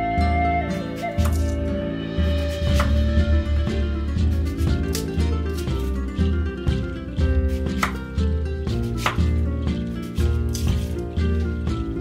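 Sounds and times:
guitar music with steady beat: 0.0 - 12.0
knife cutting on wooden board: 1.0 - 1.6, 2.4 - 3.0, 7.4 - 8.0, 8.7 - 11.0.

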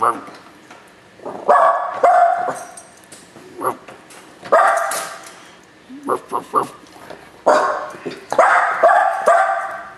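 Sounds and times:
dog barking: 1.5 - 2.6, 4.5 - 5.1, 7.4 - 9.9.

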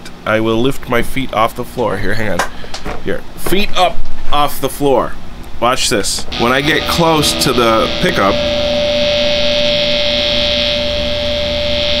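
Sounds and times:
guitar pickup hum-buzz: 6.1 - 12.0
amp hiss: 6.2 - 12.0.

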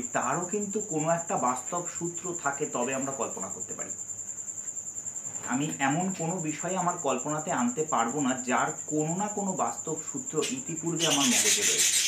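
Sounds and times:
high-pitched insect trill: 0.0 - 12.0
man talking: 5.5 - 11.8.

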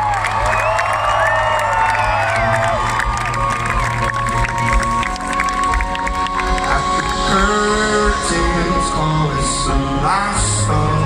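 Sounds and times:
crowd cheering and shouting: 0.0 - 11.0
live rock band music: 1.6 - 11.0.

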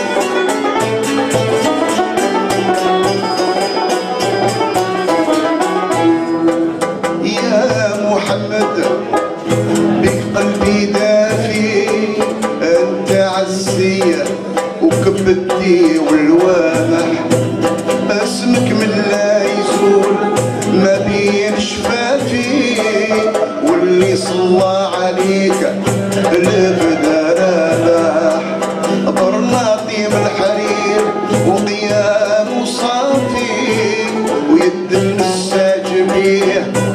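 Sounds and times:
bending melody line: 0.0 - 36.9
hand drum beat: 0.0 - 36.9
oud and plucked strings: 0.0 - 36.9
man singing: 7.1 - 36.9.

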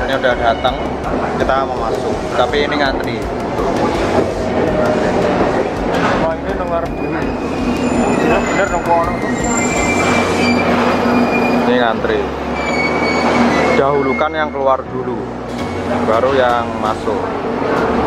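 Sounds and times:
high whining tones: 0.0 - 17.6
train slowing to a stop: 6.9 - 14.2.

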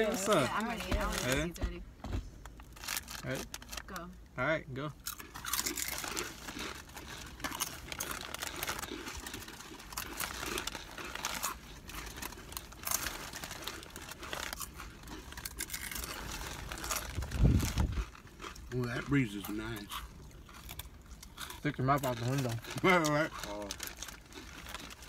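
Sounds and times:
chip bags crinkling: 0.0 - 1.5, 2.5 - 4.0, 5.0 - 25.0
chips being crunched: 5.1 - 20.0
wind buffeting microphone: 17.1 - 18.1.

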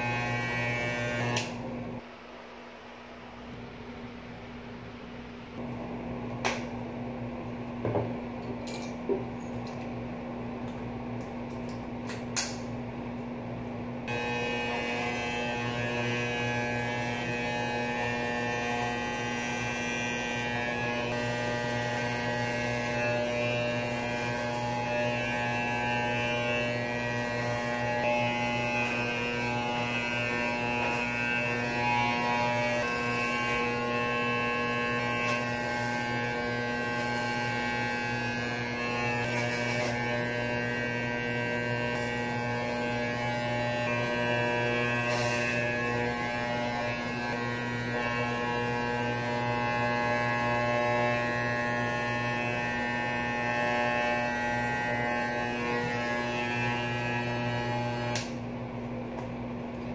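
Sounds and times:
electric hair clippers buzzing: 0.0 - 2.0, 14.0 - 58.5.

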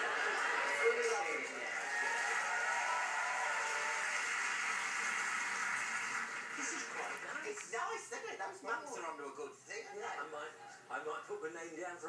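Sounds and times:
voices from television speaker: 0.0 - 1.8, 6.6 - 12.0.

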